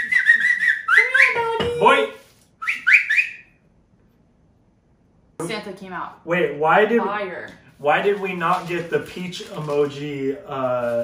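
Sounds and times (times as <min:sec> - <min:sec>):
person whistling: 0:00.0 - 0:01.6, 0:02.6 - 0:03.5.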